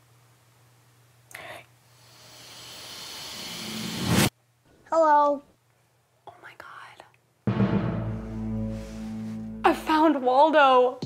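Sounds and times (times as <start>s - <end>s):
rising hiss: 2.0s - 4.3s.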